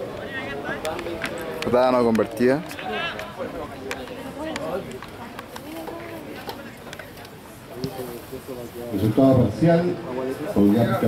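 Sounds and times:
people calling and talking: 0:00.0 - 0:11.0.

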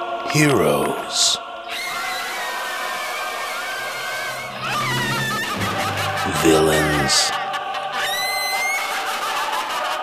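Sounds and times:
steady rushing noise: 0:04.3 - 0:07.0.

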